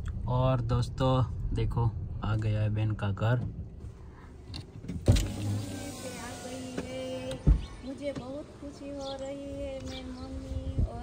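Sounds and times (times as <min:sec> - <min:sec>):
steady low car hum: 0:00.0 - 0:11.0
sharp thump inside car: 0:04.8 - 0:08.4.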